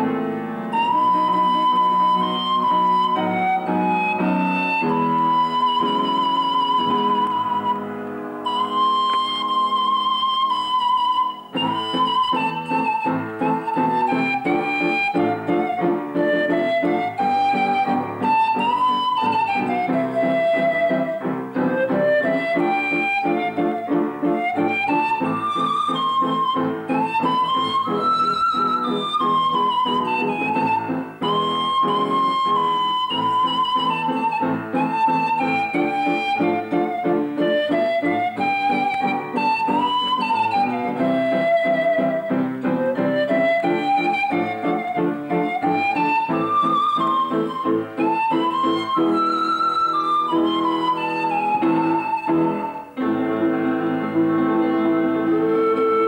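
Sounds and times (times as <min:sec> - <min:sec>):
pan flute melody: 0:00.0 - 0:56.0
piano repeated chords: 0:00.0 - 0:56.0.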